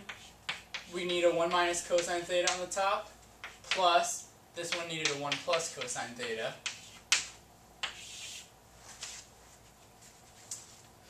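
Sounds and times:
chalk scraping on blackboard: 0:00.0 - 0:01.2, 0:06.6 - 0:08.5
chalk tapping on blackboard: 0:00.0 - 0:02.6, 0:03.4 - 0:03.9, 0:04.6 - 0:06.0, 0:06.6 - 0:08.5.

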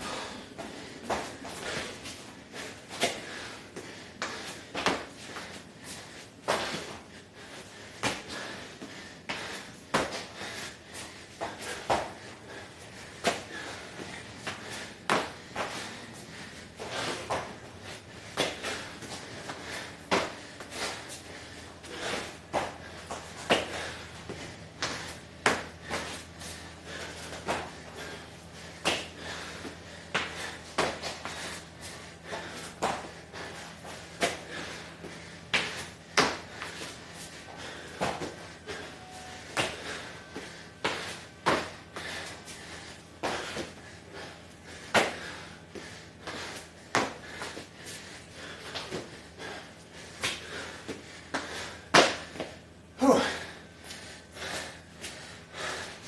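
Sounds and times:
man puffing breaths: 0:00.0 - 0:56.0
hands and feet thumping on concrete: 0:00.1 - 0:07.1, 0:08.0 - 0:12.6, 0:13.2 - 0:55.9.

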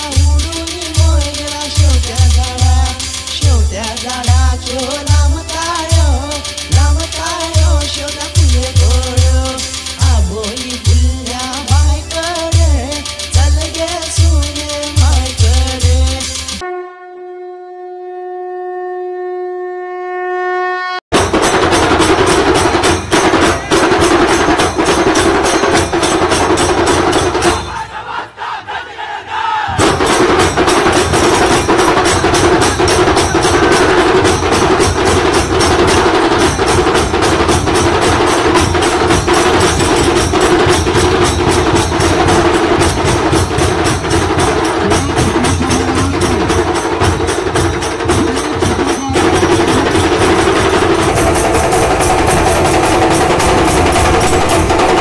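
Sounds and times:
drums playing fast beat: 0:00.0 - 0:16.6, 0:21.1 - 0:28.3, 0:29.4 - 0:55.0
crowd shouting together: 0:27.0 - 0:34.6.

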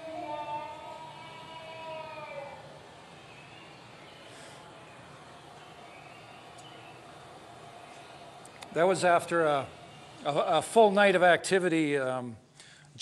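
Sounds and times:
faint recording hiss: 0:00.0 - 0:13.0.

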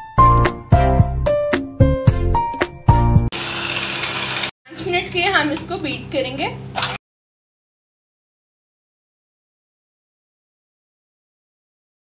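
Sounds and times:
background music: 0:00.0 - 0:03.3
electric hand beater whisking: 0:03.3 - 0:04.6
woman's voice: 0:04.7 - 0:06.6.

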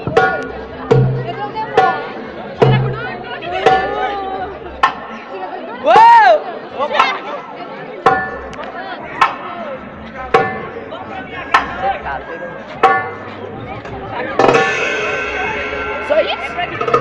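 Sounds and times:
goblet drum beats: 0:00.0 - 0:05.2, 0:08.0 - 0:17.0
crowd chatter: 0:00.0 - 0:17.0.

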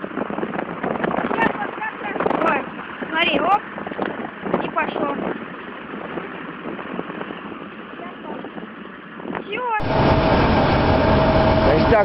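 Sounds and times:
diesel excavator engine whining: 0:09.8 - 0:12.0
tractor engine working: 0:09.8 - 0:12.0.

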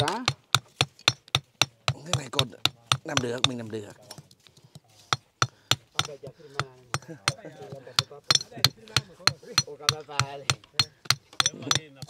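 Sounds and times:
hammer striking stone: 0:00.0 - 0:04.2, 0:05.1 - 0:12.0.

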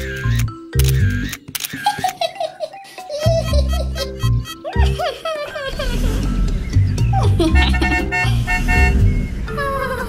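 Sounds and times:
cartoon camera shutter clicking: 0:00.0 - 0:02.1
children's music with bass line: 0:02.8 - 0:10.0.

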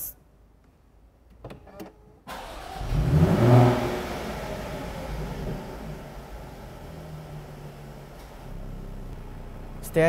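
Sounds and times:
car engine starting and idling: 0:01.5 - 0:10.0.

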